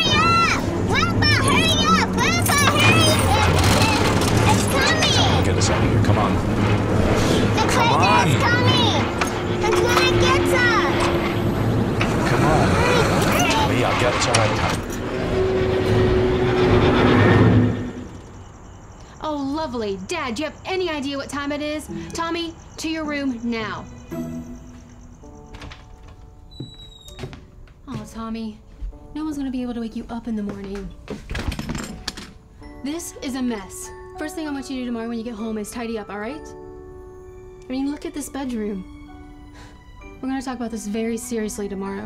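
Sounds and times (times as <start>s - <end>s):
soft sustained music notes: 20.4s - 26.4s.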